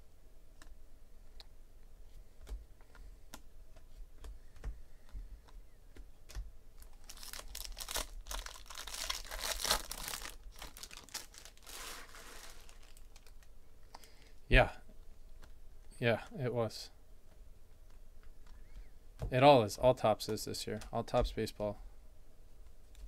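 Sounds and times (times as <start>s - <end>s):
card pack wrapper tearing: 6.8s - 13.4s.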